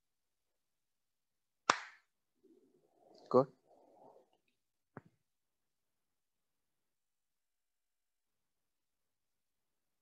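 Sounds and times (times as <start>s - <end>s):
hand smack: 1.6s - 2.0s.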